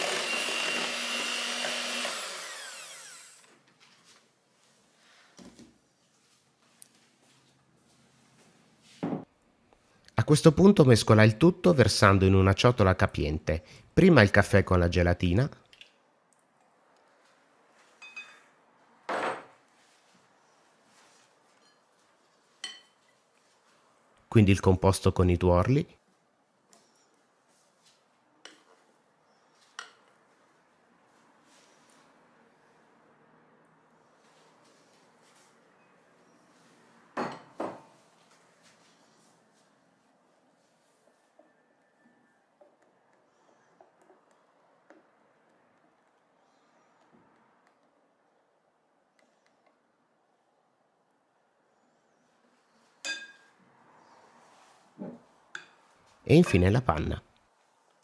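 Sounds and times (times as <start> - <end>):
glass clinking: 18.0 - 18.5, 22.6 - 23.0, 37.2 - 37.8, 53.0 - 53.6, 55.6 - 55.8.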